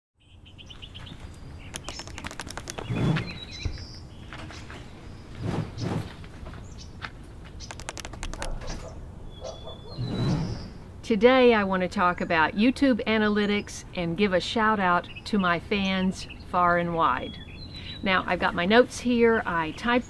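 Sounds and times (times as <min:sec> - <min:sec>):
small birds chirping: 0:00.2 - 0:10.9, 0:14.9 - 0:18.6.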